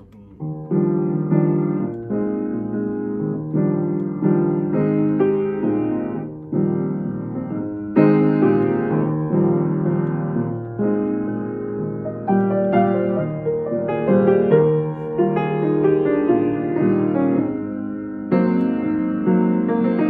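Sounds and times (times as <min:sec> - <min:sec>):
piano playing slow chords: 0:00.0 - 0:20.0.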